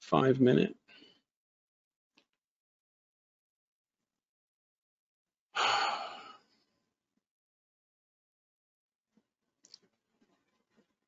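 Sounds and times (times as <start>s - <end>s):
man sighing: 5.6s - 6.5s.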